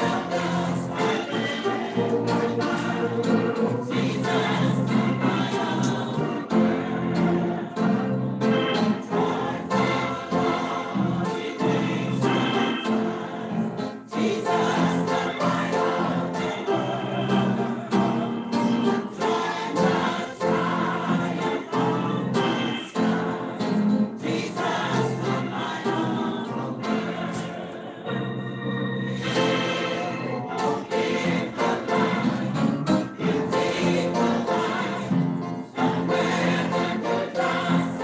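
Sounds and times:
choir singing gospel music: 0.0 - 38.0.

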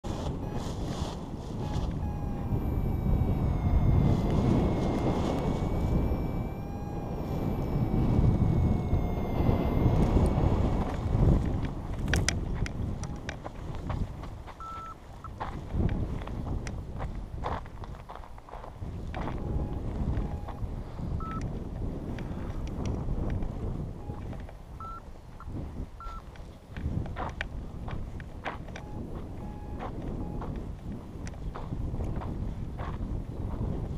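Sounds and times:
wind rushing over microphone: 0.0 - 33.9
faint steady tones: 0.1 - 13.6, 19.2 - 21.5, 28.0 - 31.5.

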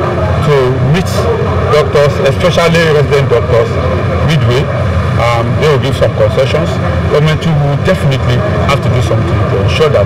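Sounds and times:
low engine-like hum: 0.0 - 10.0.

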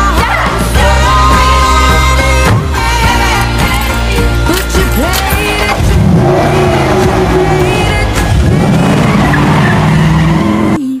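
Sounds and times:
background music: 0.0 - 11.0
car engine revving: 1.1 - 11.0
tyres squealing: 4.6 - 10.8.

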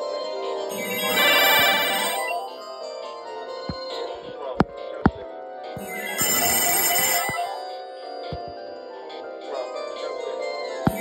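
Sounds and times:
telephone ringtone trilling: 0.7 - 2.8, 5.8 - 8.5.

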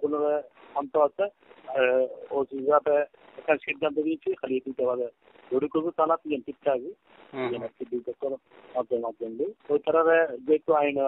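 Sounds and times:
person talking over telephone: 0.0 - 11.0.

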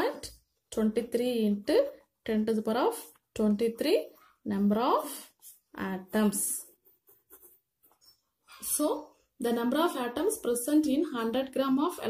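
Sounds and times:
pen scratching on paper: 5.3 - 8.2.

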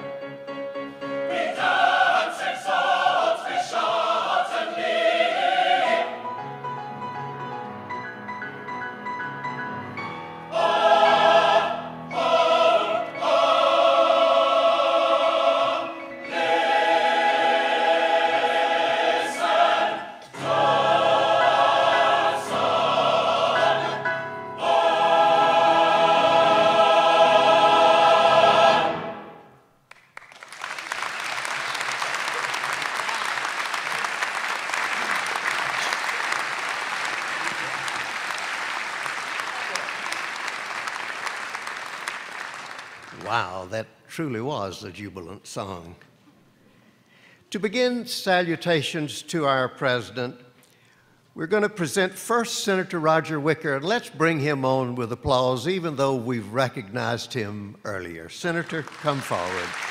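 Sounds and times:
mixed choir singing: 1.2 - 6.4, 10.5 - 29.6
audience applauding: 29.8 - 43.6, 58.5 - 59.9.

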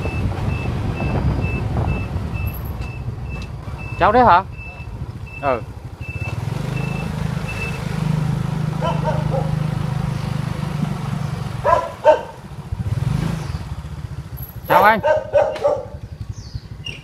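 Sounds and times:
small motorbike engine running: 4.8 - 17.0.

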